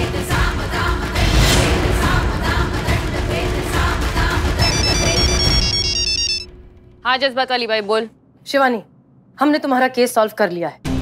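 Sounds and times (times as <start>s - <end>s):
background music: 0.0s - 8.1s
phone ringtone beeps: 4.6s - 6.6s.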